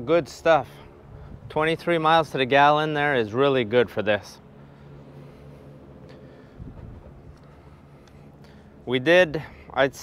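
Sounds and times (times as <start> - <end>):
steady low hum: 0.0 - 10.0
wind rumble on microphone: 0.9 - 2.4, 6.4 - 7.5.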